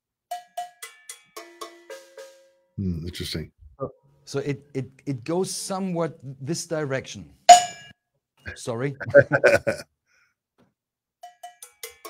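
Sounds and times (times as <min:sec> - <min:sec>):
cowbells struck with drumstick: 0:07.5 - 0:07.9.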